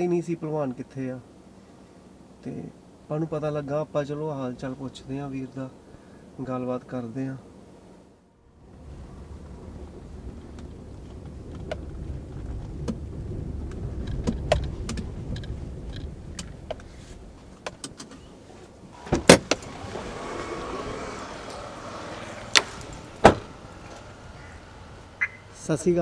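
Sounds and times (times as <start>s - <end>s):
road noise hiss: 0.0s - 26.0s
engine and tyre rumble: 0.6s - 26.0s
small clicks and rattles: 10.4s - 16.9s
loud knocks: 22.4s - 25.3s.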